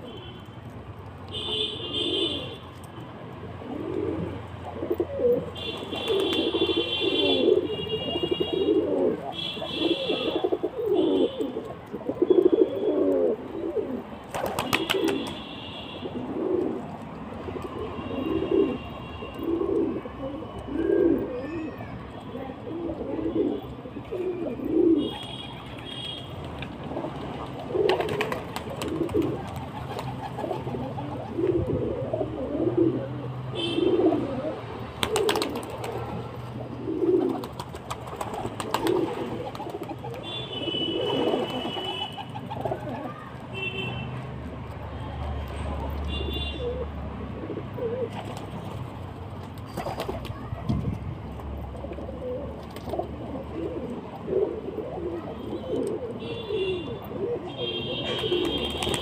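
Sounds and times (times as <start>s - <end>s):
pigeons cooing: 3.6s - 15.4s, 16.0s - 16.9s, 17.5s - 21.8s, 22.6s - 26.0s, 26.9s - 43.3s, 46.4s - 48.4s, 51.7s - 59.0s.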